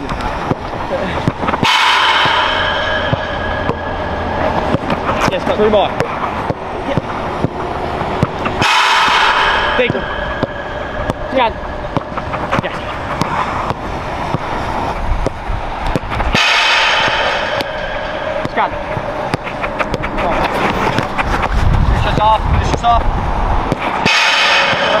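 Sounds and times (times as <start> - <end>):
loud rushing noise: 0.0 - 25.0
low rumble: 0.0 - 25.0.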